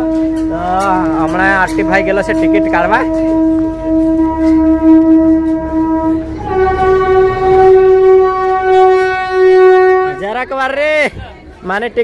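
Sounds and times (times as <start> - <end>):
train horn long note: 0.0 - 10.8.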